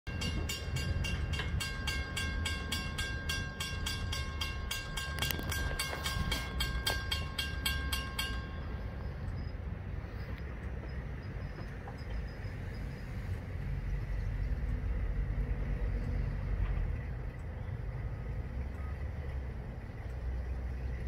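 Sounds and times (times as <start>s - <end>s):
crossing bell ringing: 0.1s - 12.5s.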